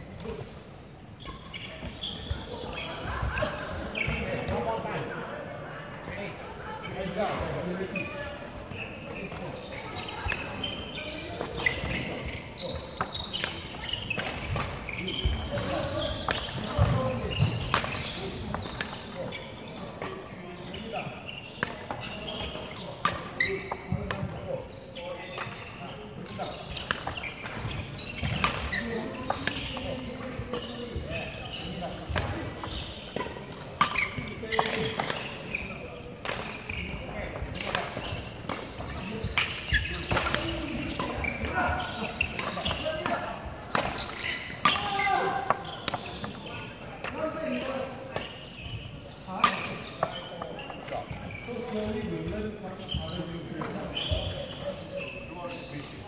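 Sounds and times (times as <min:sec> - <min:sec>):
shoe squeaks on wooden floor: 0:01.2 - 0:04.6, 0:06.8 - 0:43.3, 0:43.9 - 0:56.0
rackets striking shuttlecock: 0:37.3 - 0:46.4.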